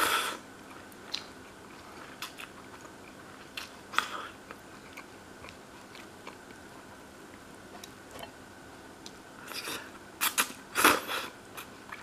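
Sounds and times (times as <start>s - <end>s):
person chewing noodles: 0.0s - 6.9s.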